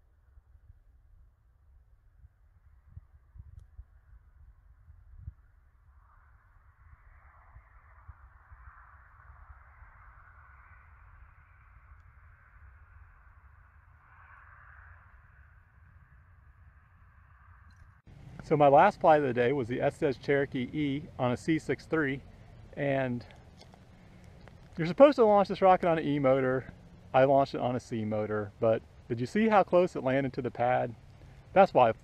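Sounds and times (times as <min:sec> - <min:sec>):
wind rumble on microphone: 0:00.3 - 0:13.4
faint hiss: 0:18.1 - 0:32.0
small bumps: 0:22.6 - 0:25.0.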